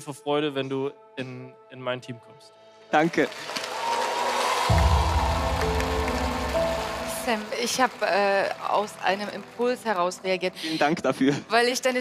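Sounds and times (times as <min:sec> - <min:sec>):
audience applauding and cheering: 0:03.0 - 0:10.6
tv show music cue: 0:04.7 - 0:08.6.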